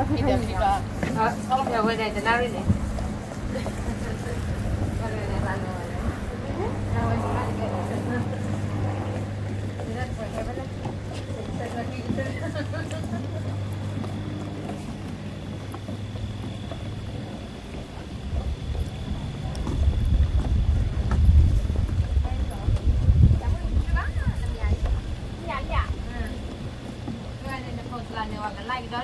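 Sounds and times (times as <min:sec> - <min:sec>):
wind rumble on microphone: 0:00.0 - 0:15.4, 0:16.0 - 0:29.0
faint voices: 0:00.0 - 0:29.0
footsteps on wooden boardwalk: 0:00.0 - 0:29.0
steady low hum: 0:00.0 - 0:29.0.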